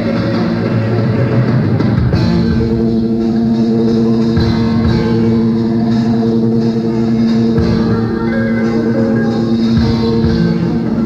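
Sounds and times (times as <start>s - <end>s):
held keyboard chord: 0.0s - 11.0s
live rock band playing: 0.0s - 11.0s.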